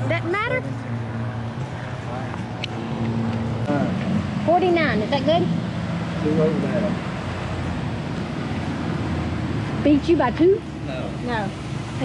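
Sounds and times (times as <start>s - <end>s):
low engine-like hum: 0.0s - 12.0s.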